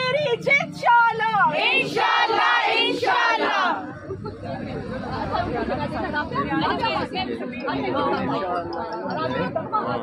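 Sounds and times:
group chatter: 0:00.0 - 0:10.0.

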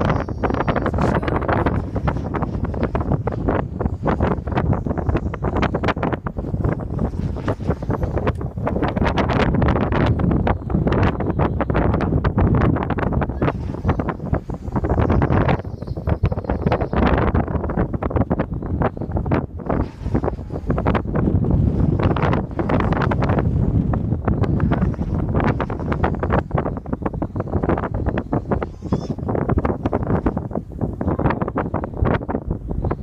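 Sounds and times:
strong wind buffeting microphone: 0:00.0 - 0:33.0.

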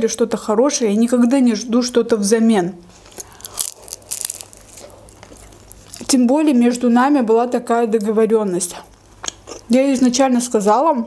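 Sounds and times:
close chewing: 0:03.1 - 0:06.1.

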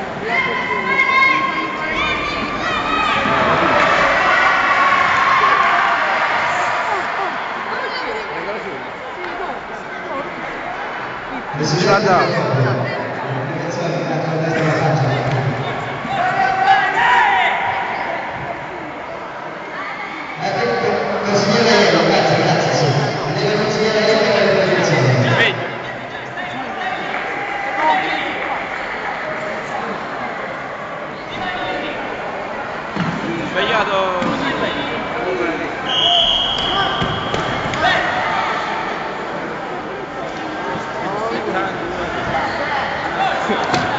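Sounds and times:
crowd noise in a hall: 0:00.0 - 0:43.9.

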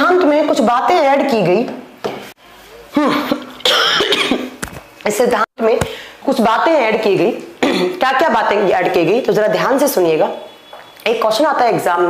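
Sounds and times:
woman coughing: 0:03.0 - 0:04.6, 0:07.6 - 0:08.0.

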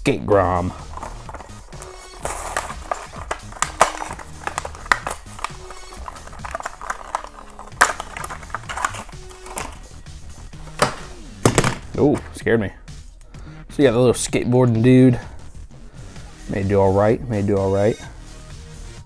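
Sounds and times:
quiet background music: 0:00.0 - 0:19.0
plastic blister pack tearing: 0:00.8 - 0:09.9.

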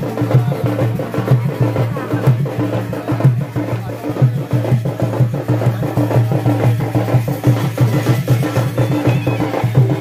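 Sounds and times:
drum and percussion music: 0:00.0 - 0:10.0.

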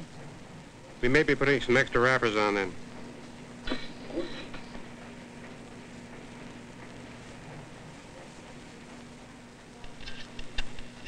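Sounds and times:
constant low hum: 0:00.0 - 0:11.0
film soundtrack hiss: 0:00.0 - 0:11.0.

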